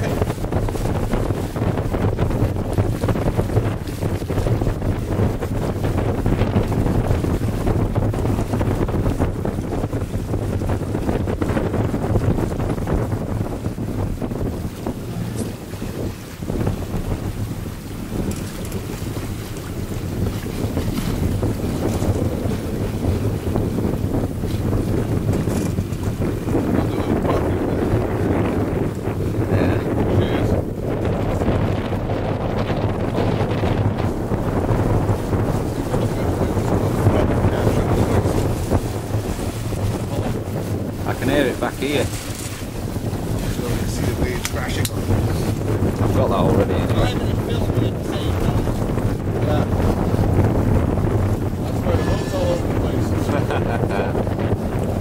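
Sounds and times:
water rushing along hull: 0:00.0 - 0:55.0
wind buffeting microphone: 0:00.0 - 0:55.0.

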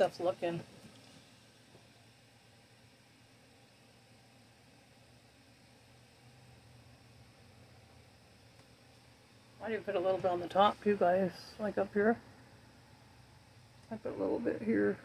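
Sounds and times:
faint low hum: 0:00.0 - 0:15.0
light hiss: 0:00.0 - 0:15.0.

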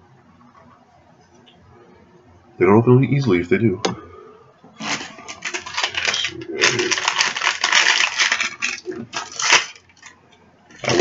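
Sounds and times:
plastic capsule clicking and rattling: 0:04.8 - 0:10.1.

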